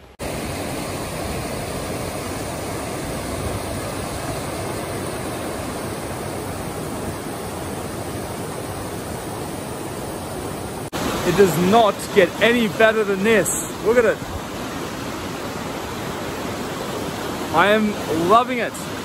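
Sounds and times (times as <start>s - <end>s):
creek rushing over rocks: 0.0s - 19.0s.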